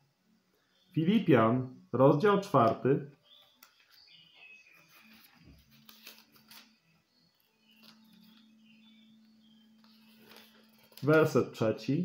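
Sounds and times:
faint clicks and rustles: 3.4 - 6.7, 7.6 - 8.5, 9.7 - 11.3.

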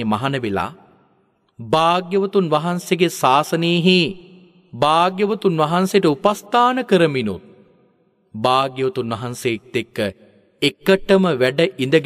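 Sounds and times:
man preaching in chant-like voice: 0.0 - 12.0.

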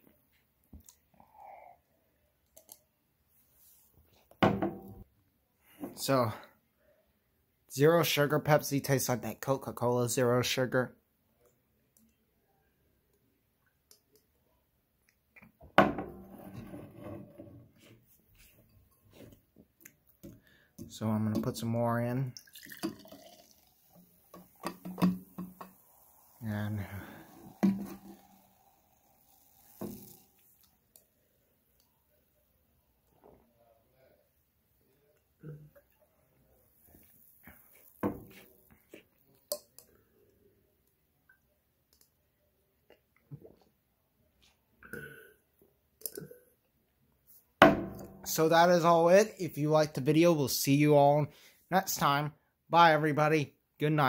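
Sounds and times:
soda fizzing in glass: 22.3 - 31.0
person swallowing: 44.8 - 45.4
plastic bottle knocking down: 47.6 - 48.2.

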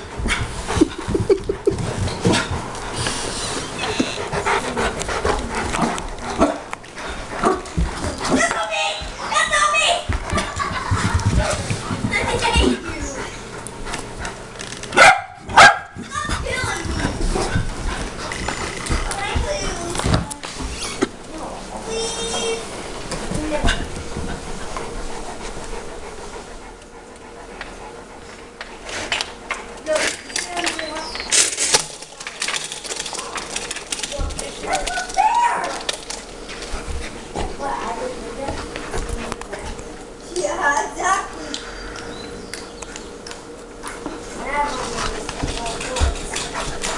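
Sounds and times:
dogs vocalizing: 0.0 - 11.5, 36.0 - 46.9
dog barking loudly: 15.0 - 16.0.

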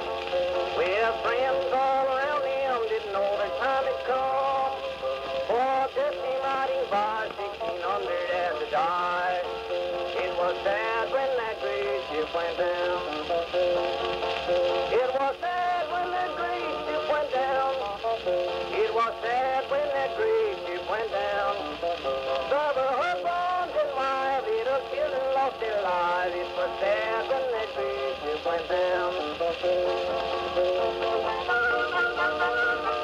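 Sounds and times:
old country song on phonograph: 0.0 - 33.0.

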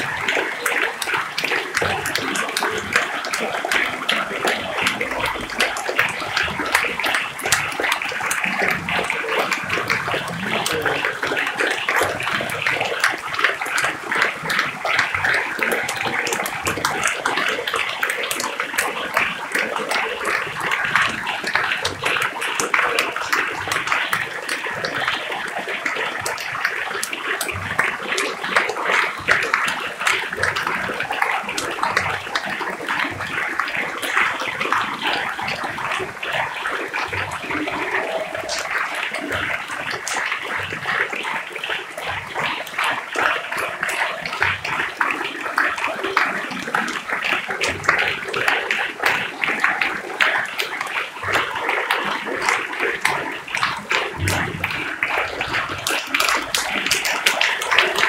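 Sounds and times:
large audience applauding: 0.0 - 58.0.

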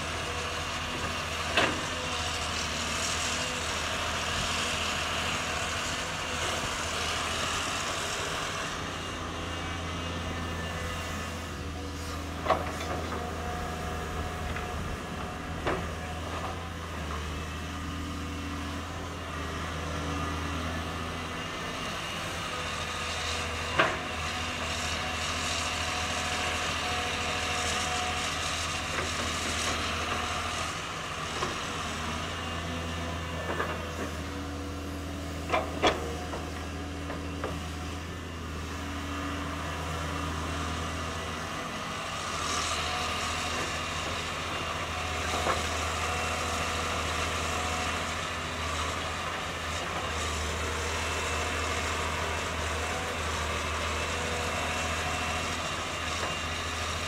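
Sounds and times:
excavator diesel engine running: 0.0 - 57.0.

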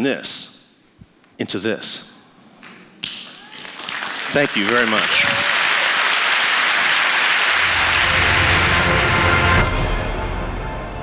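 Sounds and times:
audience applause: 3.3 - 9.6.

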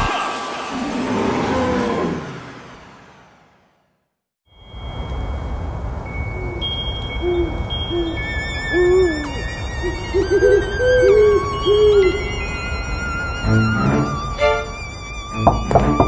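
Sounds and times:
thin high wavering tones: 4.6 - 16.0
owl hooting: 6.2 - 16.0.

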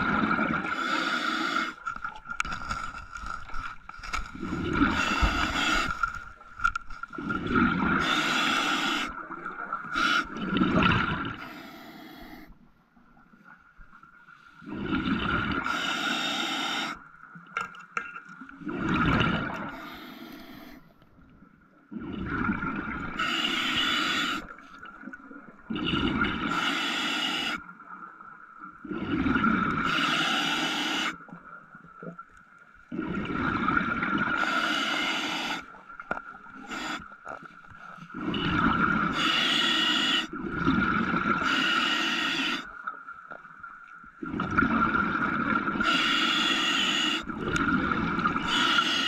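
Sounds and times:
diver breathing through regulator: 0.6 - 2.0, 4.5 - 6.2, 19.7 - 20.9, 23.2 - 24.6, 26.4 - 27.6, 34.3 - 35.8, 36.6 - 40.4.

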